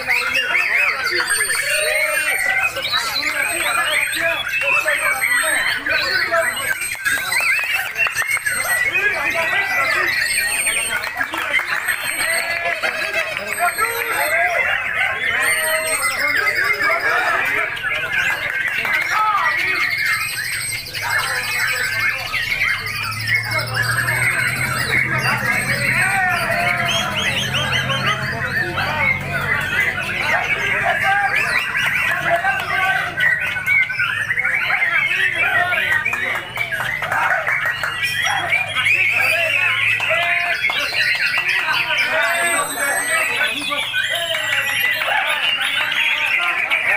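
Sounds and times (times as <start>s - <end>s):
songbirds chirping and whistling: 0.0s - 46.9s
men shouting: 11.9s - 19.9s, 22.0s - 46.9s.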